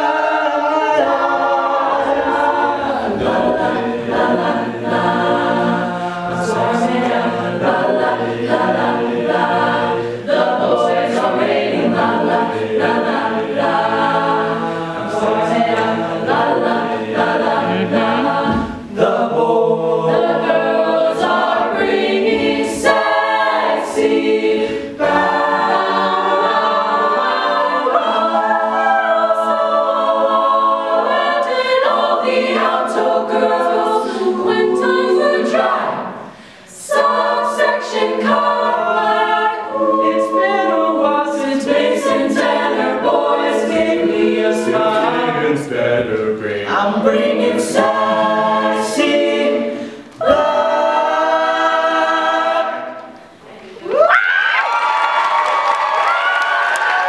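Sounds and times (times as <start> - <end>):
a cappella group singing: 0.0 - 54.1
low bass line voice: 17.6 - 18.5.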